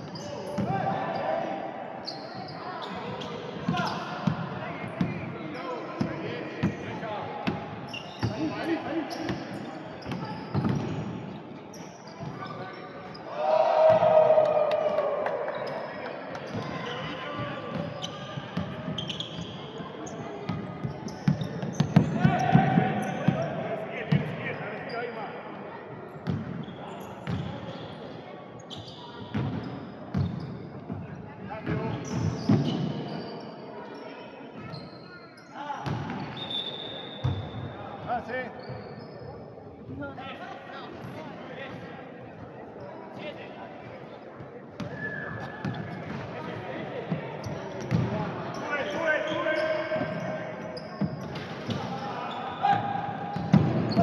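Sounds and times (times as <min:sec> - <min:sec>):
sneakers squeaking: 0:00.0 - 0:14.0, 0:15.4 - 0:54.0.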